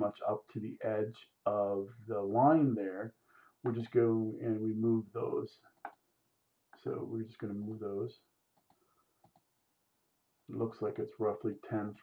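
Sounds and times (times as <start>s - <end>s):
spoken word: 0.0s - 3.1s, 3.7s - 5.5s, 6.8s - 8.2s, 10.5s - 12.0s
computer mouse clicks: 8.6s - 9.5s.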